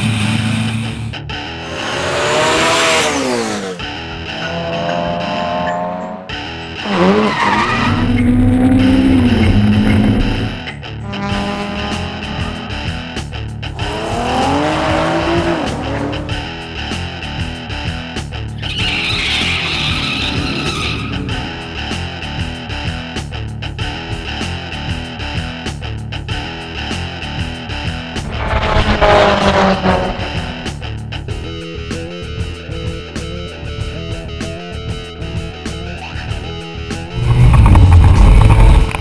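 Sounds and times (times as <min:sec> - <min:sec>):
rock guitar music: 0:00.0 - 0:18.6, 0:28.1 - 0:37.2
race car engines revving: 0:01.6 - 0:23.2, 0:28.1 - 0:31.4, 0:36.9 - 0:39.0
tire squeal: 0:06.8 - 0:12.9, 0:18.6 - 0:21.8, 0:28.2 - 0:30.9.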